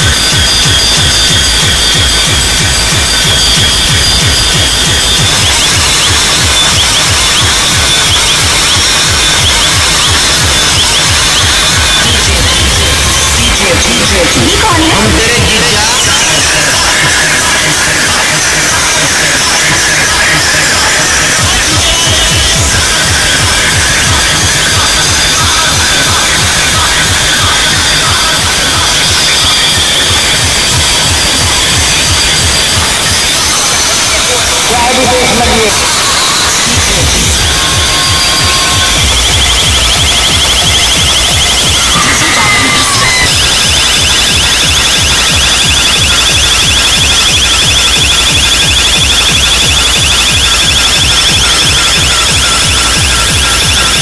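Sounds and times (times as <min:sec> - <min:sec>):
distorted loud dance music with bass: 0:00.0 - 0:54.0.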